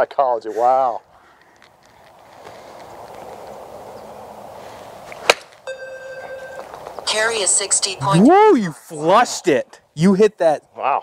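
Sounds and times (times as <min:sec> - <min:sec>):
electronic tone: 0:05.7 - 0:07.0.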